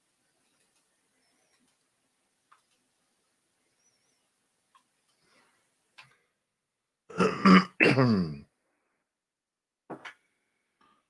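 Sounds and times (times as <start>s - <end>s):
man clearing his throat: 7.1s - 8.4s.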